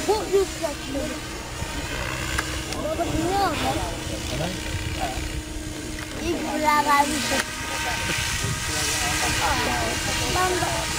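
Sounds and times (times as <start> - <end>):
faint voices talking: 0.0 - 10.9
helicopter rotor whoosh: 0.0 - 10.9.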